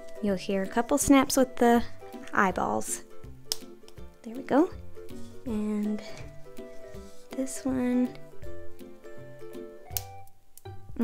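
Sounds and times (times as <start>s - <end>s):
background music with keyboard notes: 0.0s - 11.0s
plastic snapping click: 9.9s - 10.7s.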